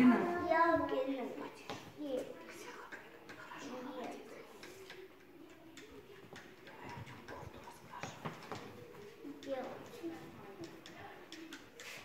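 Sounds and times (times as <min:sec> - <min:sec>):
murmur of children's voices: 0:00.0 - 0:12.0
paintbrushes knocking against jars: 0:03.0 - 0:12.0.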